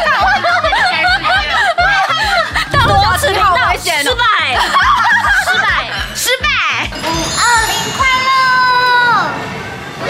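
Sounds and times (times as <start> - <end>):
background music with steady beat: 2.7 - 4.1.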